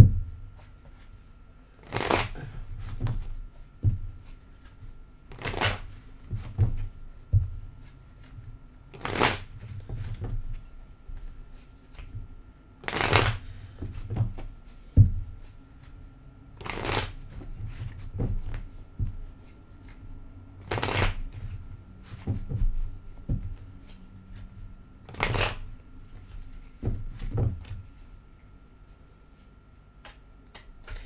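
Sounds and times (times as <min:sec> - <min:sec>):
cards being shuffled: 0:01.8 - 0:03.3, 0:04.2 - 0:06.9, 0:07.8 - 0:10.4, 0:12.8 - 0:14.5, 0:16.6 - 0:18.8, 0:20.6 - 0:27.9, 0:30.0 - 0:31.0.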